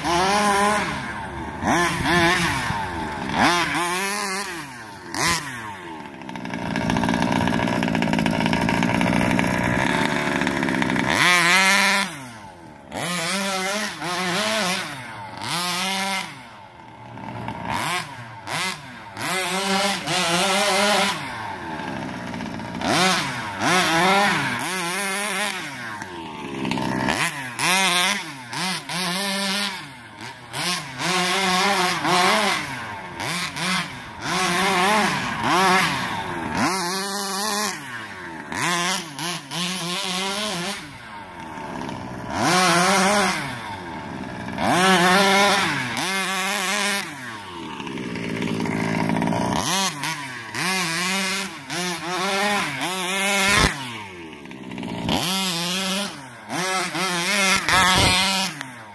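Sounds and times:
model car engine revving: 0.0s - 58.9s.

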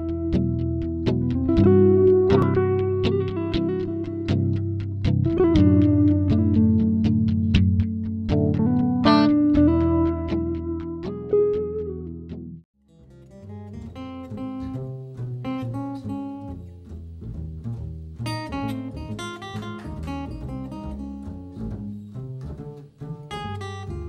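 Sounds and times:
acoustic guitar: 0.0s - 24.0s
plucked upright bass: 0.0s - 24.0s
plucked-string music: 0.0s - 24.0s.

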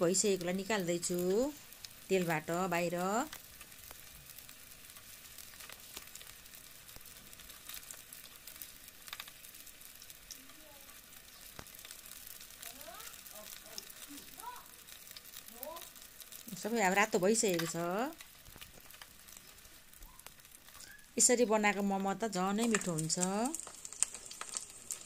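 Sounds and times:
dumplings sizzling in oil: 0.0s - 25.0s.

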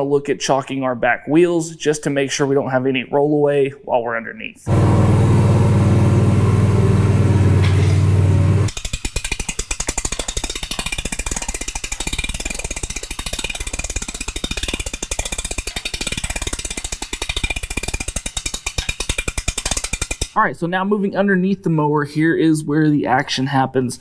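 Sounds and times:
mower engine running: 4.7s - 19.0s
hand-crank winch ratcheting: 8.7s - 20.4s.

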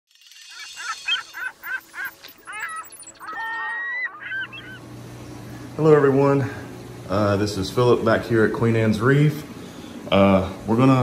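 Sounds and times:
pitch-bending calls: 0.1s - 5.2s
aquarium pump hum: 2.5s - 11.0s.

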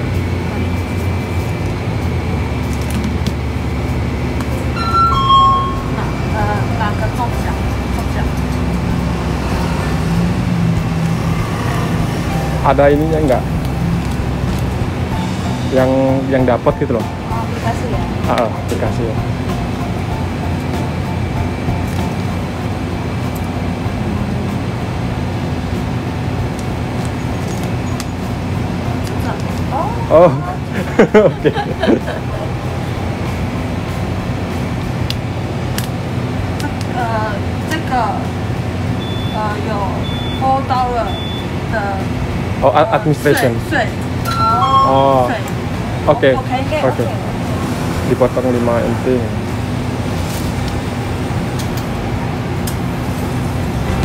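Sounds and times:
steady low hum: 0.0s - 47.7s, 49.0s - 54.0s
short two-note tone: 4.7s - 6.4s, 44.3s - 45.4s.

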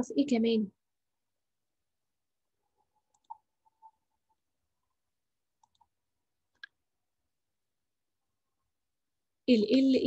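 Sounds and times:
faint computer mouse clicks: 5.6s - 5.9s.

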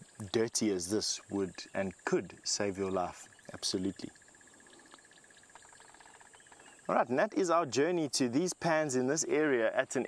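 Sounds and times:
faint chirps: 0.0s - 10.0s.

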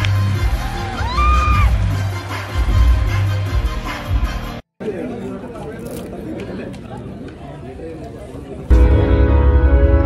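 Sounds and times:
chatter of many people: 4.7s - 9.0s.

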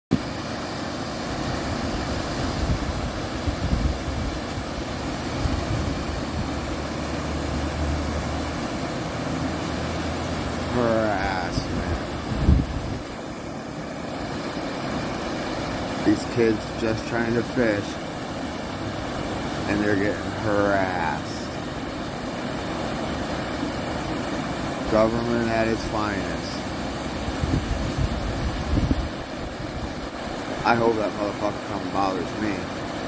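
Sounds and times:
river water pouring over weir: 0.1s - 33.0s
wind buffeting microphone: 1.7s - 6.8s, 11.6s - 13.2s, 27.2s - 30.3s
person speaking: 10.7s - 12.1s, 16.0s - 18.0s, 19.6s - 21.6s, 24.9s - 26.7s, 30.6s - 32.7s.

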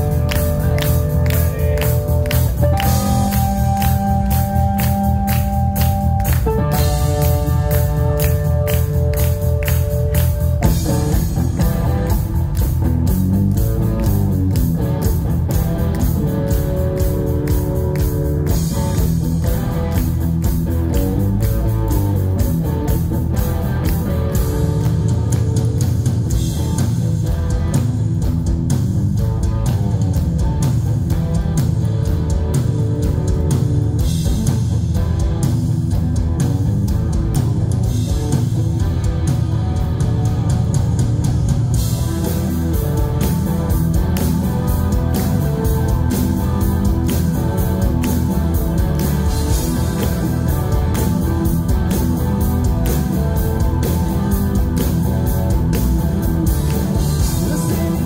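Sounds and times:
bass guitar: 0.0s - 58.0s
drum kit: 0.0s - 58.0s
electric guitar: 0.0s - 58.0s.

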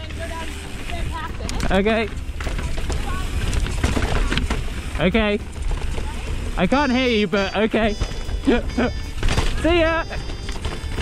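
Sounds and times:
bike rattling clicks: 0.0s - 7.2s, 7.8s - 11.0s
bike tyres rumbling on dirt: 0.0s - 11.0s.

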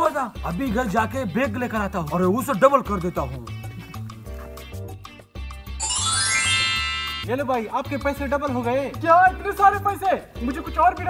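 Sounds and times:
shimmering bell-like chimes: 5.8s - 7.3s.

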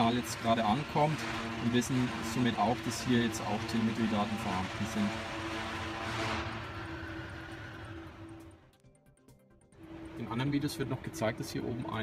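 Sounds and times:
background music held tone: 0.0s - 12.0s.

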